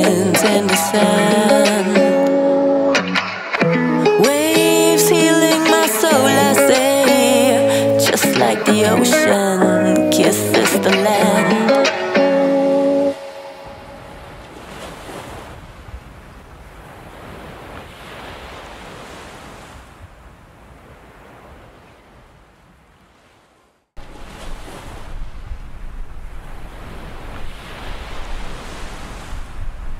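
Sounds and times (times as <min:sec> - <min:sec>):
sea surf washing onto beach: 0:04.1 - 0:19.9, 0:24.0 - 0:29.9
wind rumbling on microphone: 0:24.0 - 0:29.9.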